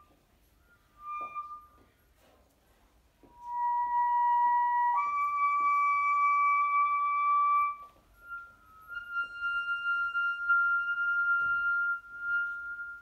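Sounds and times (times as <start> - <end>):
bass clarinet held notes: 3.3 - 13.0.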